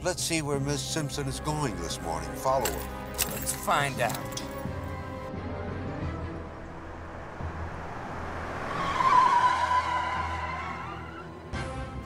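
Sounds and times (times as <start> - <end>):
car engine: 4.4 - 12.0
car tyres squealing: 6.3 - 11.5.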